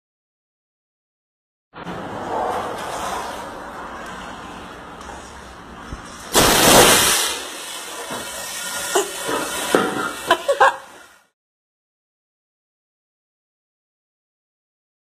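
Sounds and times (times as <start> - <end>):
tyre bursting with loud bang: 6.3 - 8.3.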